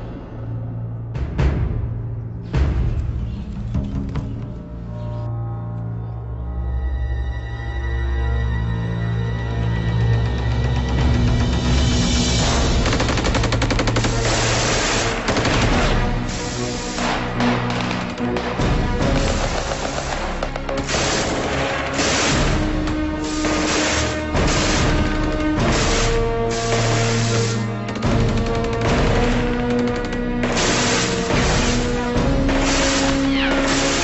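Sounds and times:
gunshots: 12.4 - 34.0
machine-gun fire: 12.5 - 16.2, 16.9 - 34.0.

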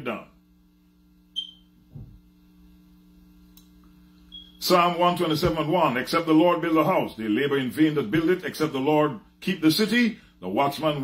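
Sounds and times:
low electrical hum: 0.0 - 11.0
soft low thud: 1.9 - 2.3.

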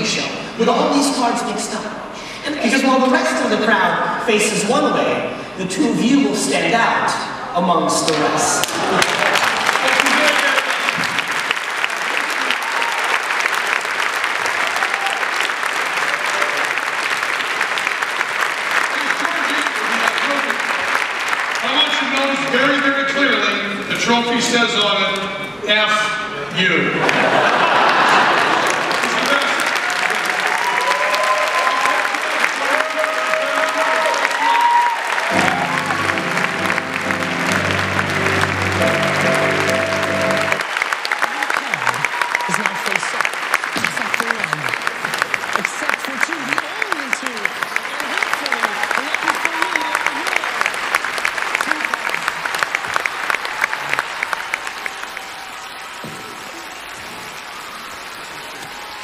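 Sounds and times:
audience applauding and cheering: 7.4 - 24.4, 27.0 - 59.0
held musical chord: 35.3 - 40.6.

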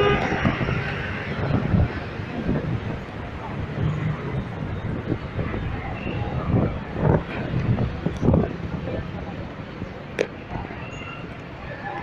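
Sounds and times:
steady background noise: 0.0 - 12.0.

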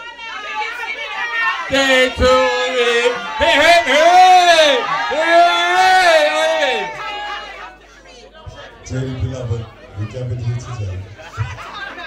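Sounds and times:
room chatter: 0.0 - 12.0
man's voice through a microphone: 1.7 - 4.8, 8.5 - 11.5.

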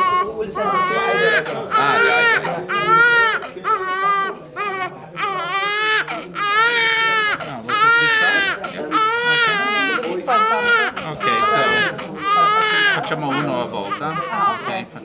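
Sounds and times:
baby crying hard: 0.0 - 14.9.

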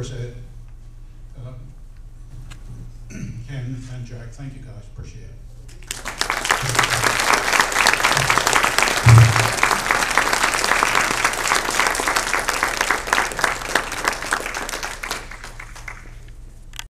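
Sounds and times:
audience applauding: 5.7 - 16.4.

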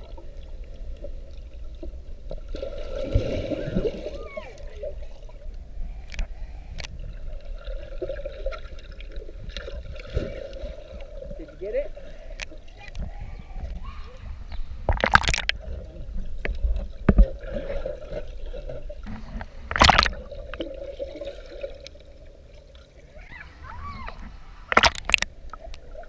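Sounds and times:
muffled underwater sloshing: 0.0 - 26.0
loud splashes: 19.8 - 20.2.

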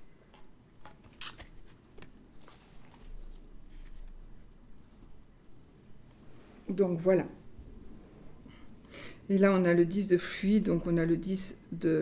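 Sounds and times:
deck of cards rustling: 0.3 - 5.2.

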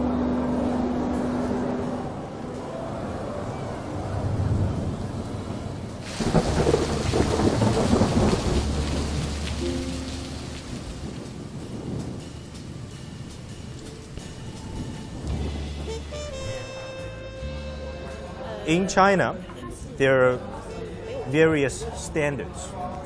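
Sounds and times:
rain falling: 2.3 - 18.4
thunder clap rumbling: 3.9 - 16.7.

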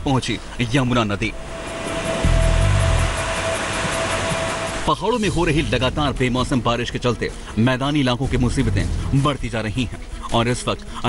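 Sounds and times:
floodwater rushing: 1.0 - 5.7.

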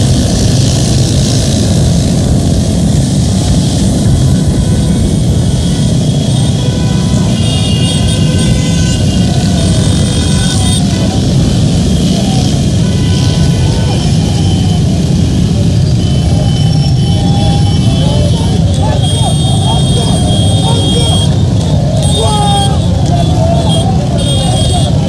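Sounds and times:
motorcycle engines rumbling: 0.0 - 25.0
crowd shouting: 6.4 - 25.0.

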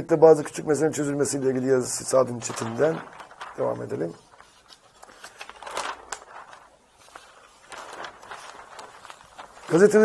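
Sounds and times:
newspaper pages rustling: 0.3 - 10.0.

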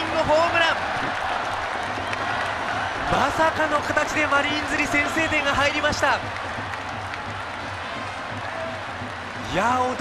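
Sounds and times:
stadium crowd applauding and cheering: 0.0 - 10.0.

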